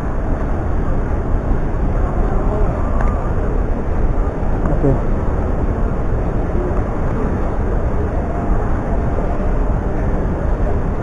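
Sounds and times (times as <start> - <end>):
low rumble of indoor hall: 0.0 - 11.0
faint indistinct voices: 1.8 - 11.0.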